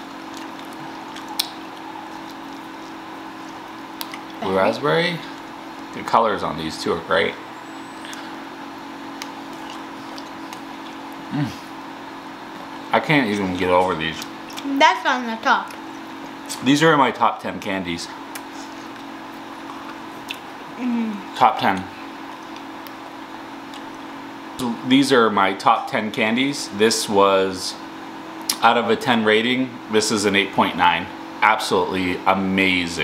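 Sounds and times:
low room hum: 0.0s - 33.0s
person humming mm: 11.3s - 11.7s.

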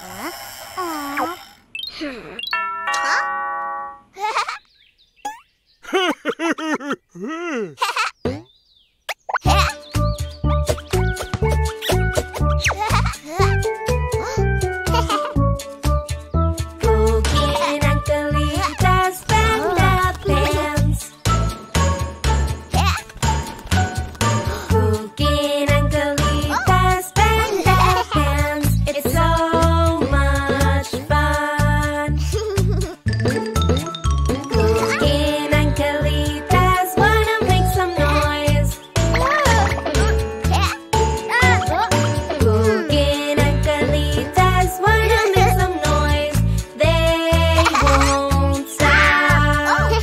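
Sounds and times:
upbeat children's song: 9.4s - 50.0s.

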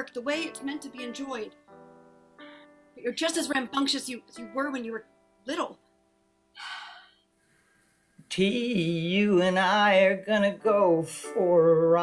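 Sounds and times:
person gasping: 6.6s - 7.9s.

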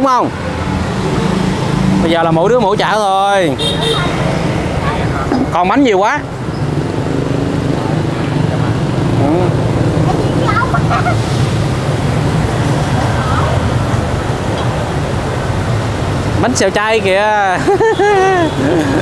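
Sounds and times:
gas burners roaring: 0.4s - 19.0s.

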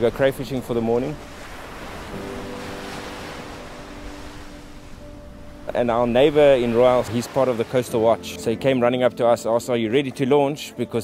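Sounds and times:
rough sea surf: 0.0s - 8.4s
low background music chord: 0.0s - 11.0s
wind: 0.0s - 11.0s.

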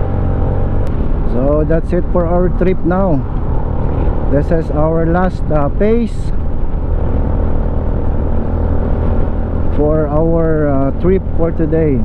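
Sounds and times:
motorcycle engine: 0.0s - 12.0s.

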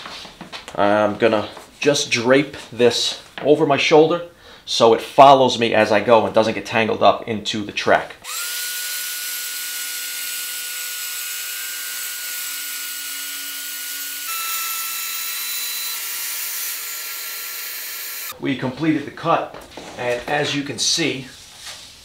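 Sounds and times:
circular saw cutting board: 8.2s - 18.4s.

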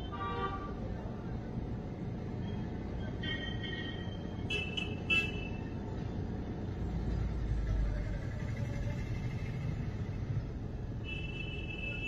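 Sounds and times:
car and traffic rumble: 0.0s - 12.0s.

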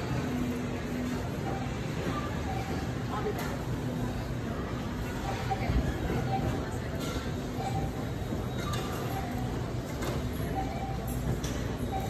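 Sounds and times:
shopping cart rolling: 0.0s - 12.0s.

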